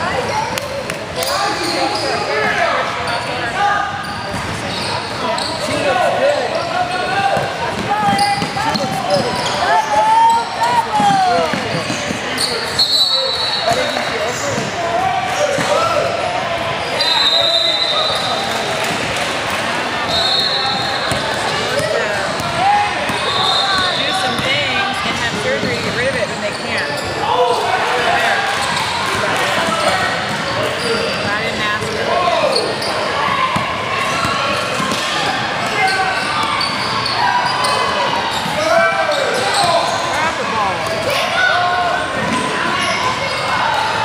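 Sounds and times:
high-pitched shoe squeaks: 8.0 - 10.8.

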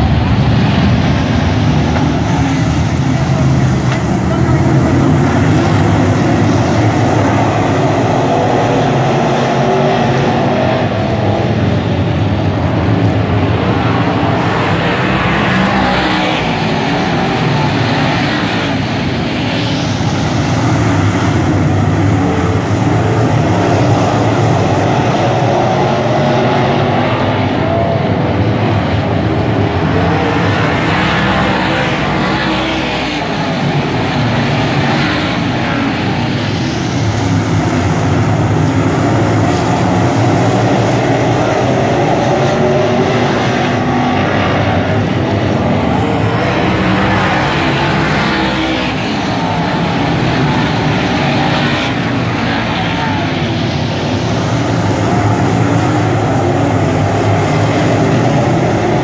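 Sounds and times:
race car engines roaring: 0.0 - 59.0.

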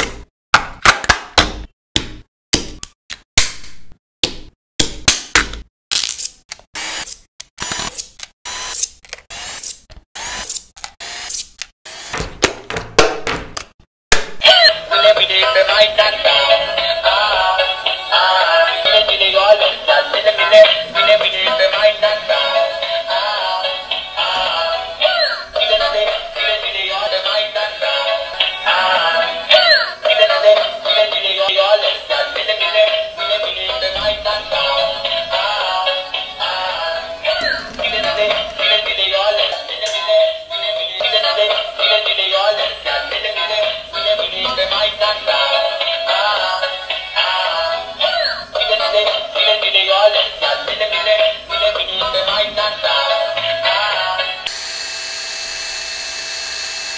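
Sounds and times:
electronic song from toy speaker: 14.4 - 54.6.

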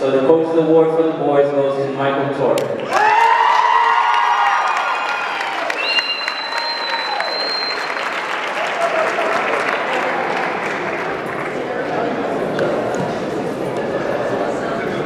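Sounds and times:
high cheers: 2.8 - 10.8
audience applauding: 2.8 - 11.9.

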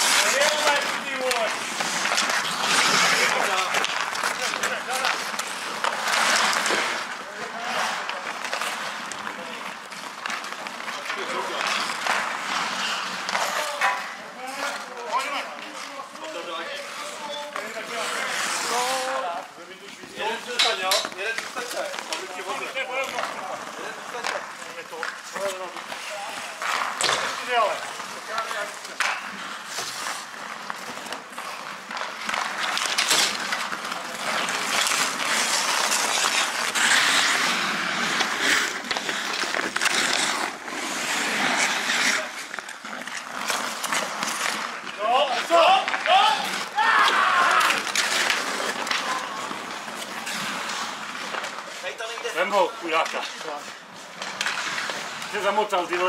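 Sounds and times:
sharp clacks of sticks or puck: 0.0 - 19.2, 19.8 - 56.0
skate blades scraping on ice: 0.0 - 56.0
players calling out: 43.3 - 50.8.

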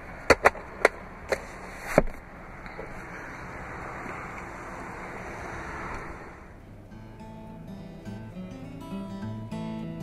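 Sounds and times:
steady rushing noise: 0.0 - 7.0.

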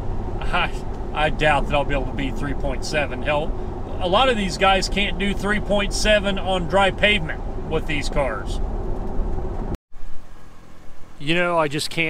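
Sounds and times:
car engine and road noise: 0.0 - 12.0
quiet low rumble: 0.0 - 12.0.

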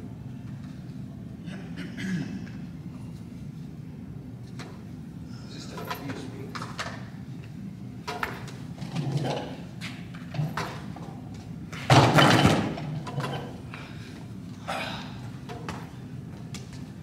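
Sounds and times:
loud barbell clatter: 11.9 - 13.4.

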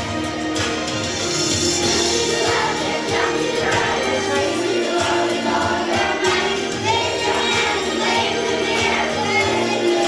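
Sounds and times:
musical accompaniment: 0.0 - 10.0
children's choir singing: 1.2 - 10.0.

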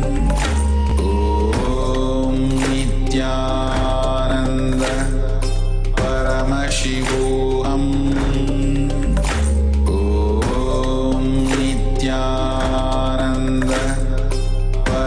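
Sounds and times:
steady held drone: 0.0 - 15.0
mantra chanting: 0.7 - 5.4, 6.0 - 9.2, 9.9 - 15.0.

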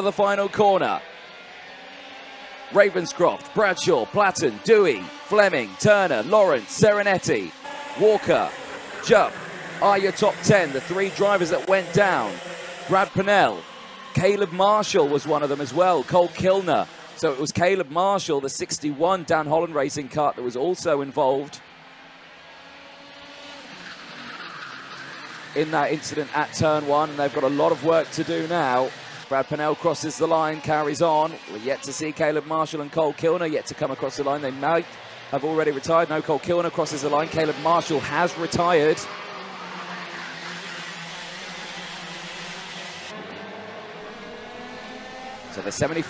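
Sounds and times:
racing kart engines passing: 0.0 - 46.0.

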